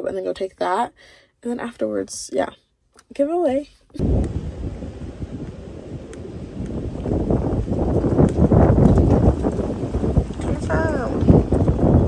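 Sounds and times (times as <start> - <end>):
wind buffeting microphone: 4.0 - 12.0.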